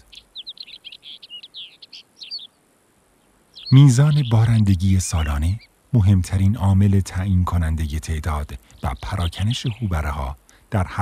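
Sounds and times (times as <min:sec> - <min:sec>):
bird chirping quickly: 0:00.0 - 0:02.6, 0:03.2 - 0:05.8.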